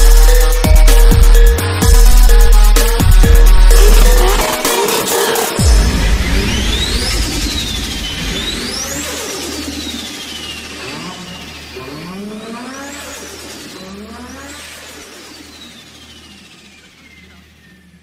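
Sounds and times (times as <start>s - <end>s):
car engine revving: 0.0s - 18.0s
deep bass drone: 0.0s - 18.0s.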